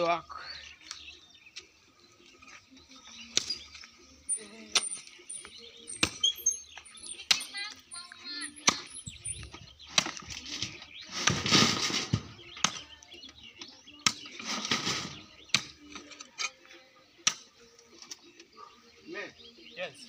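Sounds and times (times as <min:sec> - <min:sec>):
wheelbarrow rustling and rattling: 0:09.0 - 0:12.6, 0:14.3 - 0:15.4.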